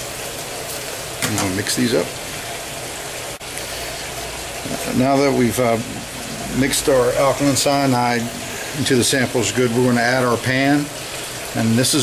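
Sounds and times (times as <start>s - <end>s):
steady hissing noise: 0.0s - 12.0s.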